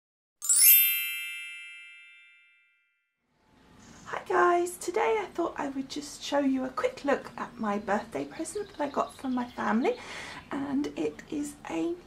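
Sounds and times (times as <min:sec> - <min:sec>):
bright chime: 0:00.4 - 0:03.0.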